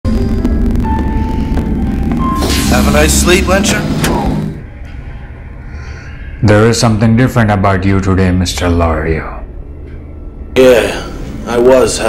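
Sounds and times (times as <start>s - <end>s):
low ambient drone: 0.1s - 12.0s.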